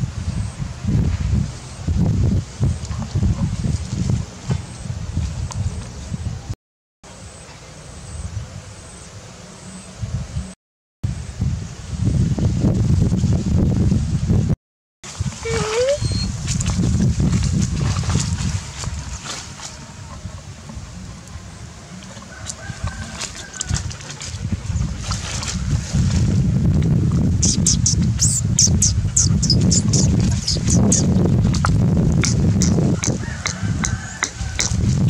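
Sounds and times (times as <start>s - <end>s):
low rumbling on microphone: 0.0s - 6.6s, 10.0s - 35.0s.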